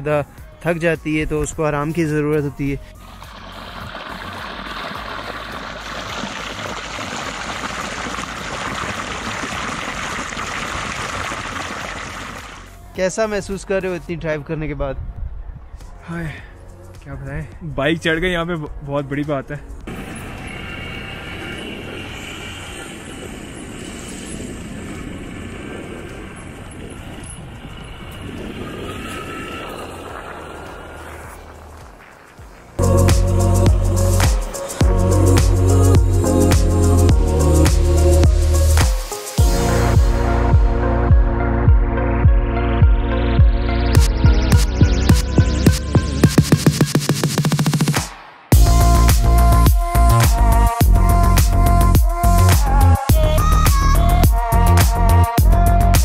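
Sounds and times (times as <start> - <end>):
road and wind noise: 0.0 - 32.8
water pouring into rocky pool: 3.0 - 12.7.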